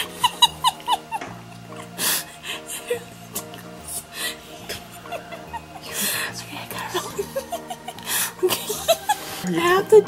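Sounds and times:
soft background music: 0:00.0 - 0:10.0
woman giggling breathily: 0:04.2 - 0:09.6.

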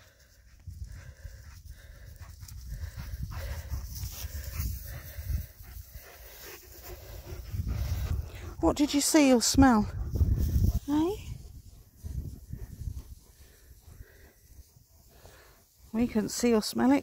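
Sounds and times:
dog panting: 0:00.0 - 0:17.0
low rumble on microphone: 0:06.8 - 0:08.7, 0:09.8 - 0:15.3.

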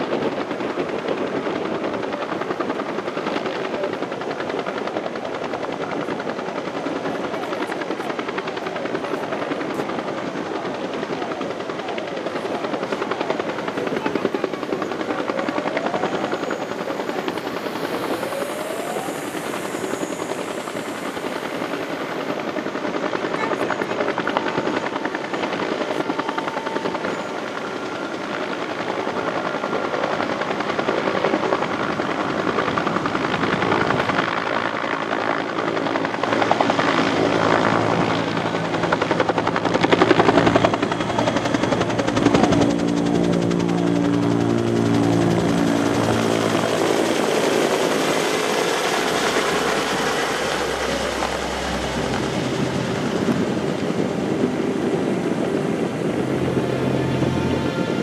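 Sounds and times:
helicopter rotor beating: 0:00.0 - 0:58.0.

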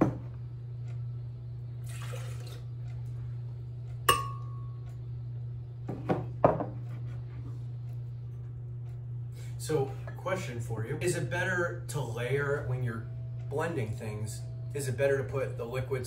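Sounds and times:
steady low hum: 0:00.0 - 0:16.0
cup clinking against glass jar: 0:04.1 - 0:04.6.

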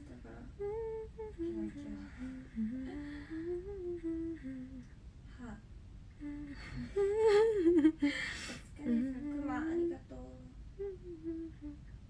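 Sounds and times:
woman humming: 0:00.0 - 0:11.9.

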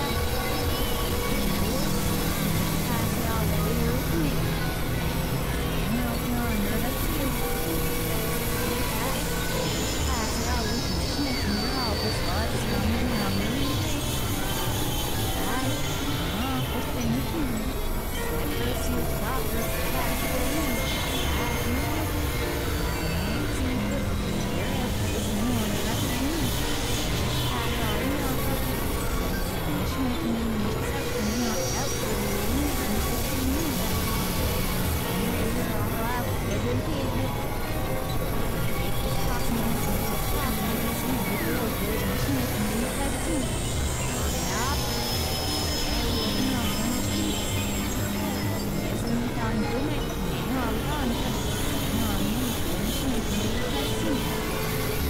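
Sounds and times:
synthesizer drone and noise: 0:00.0 - 0:55.0.

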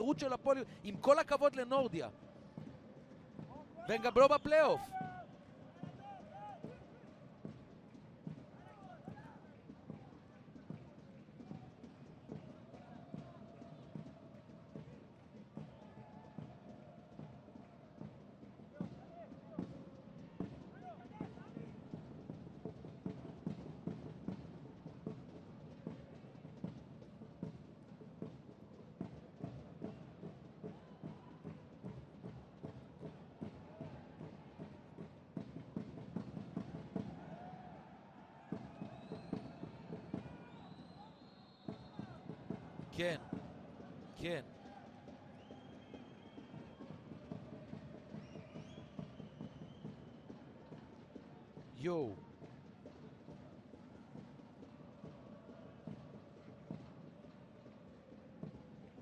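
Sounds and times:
players shouting: 0:03.9 - 0:05.0
referee whistle: 0:03.9 - 0:05.0, 0:40.6 - 0:42.2.

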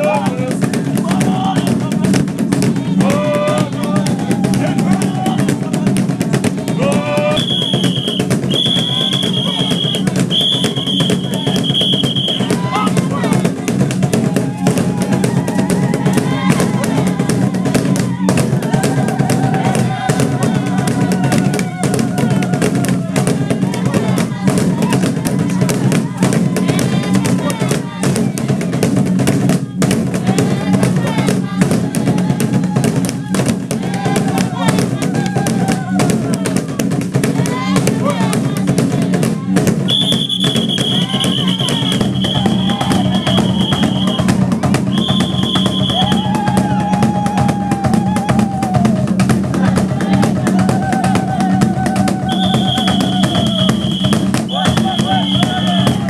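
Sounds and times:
hide drums beaten fast: 0:00.0 - 0:56.0
voices calling and chanting: 0:00.0 - 0:56.0.

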